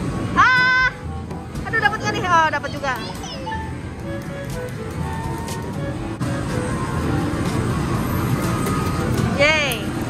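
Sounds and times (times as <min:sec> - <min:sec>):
busy game arcade rumble: 0:00.0 - 0:10.0.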